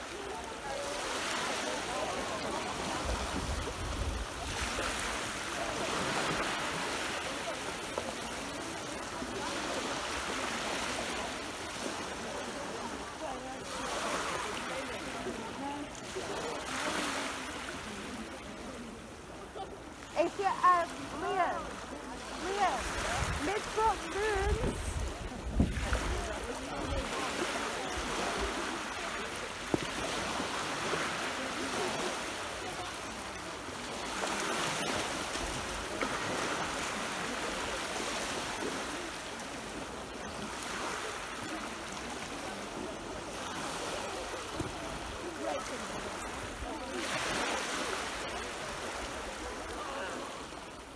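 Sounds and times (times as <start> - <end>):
waves washing up a sandy beach: 0.0 - 50.9.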